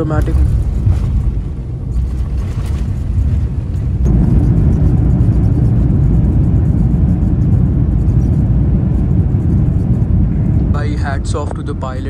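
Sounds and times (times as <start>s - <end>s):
aircraft low rumble on runway: 0.0s - 12.0s.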